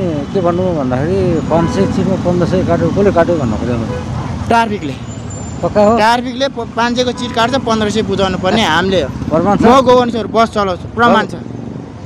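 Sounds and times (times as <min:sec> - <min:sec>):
street and traffic noise: 0:00.0 - 0:12.0
person talking: 0:05.7 - 0:11.4.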